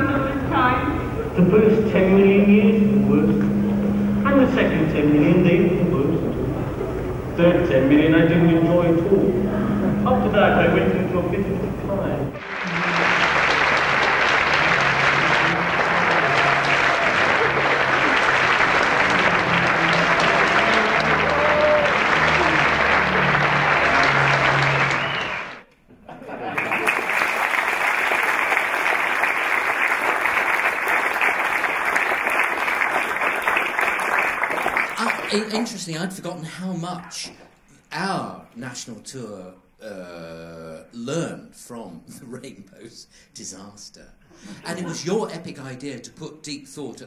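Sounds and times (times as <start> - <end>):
low music: 0.0 - 25.6
audience applauding: 2.9 - 8.0, 9.0 - 25.6, 26.4 - 35.7.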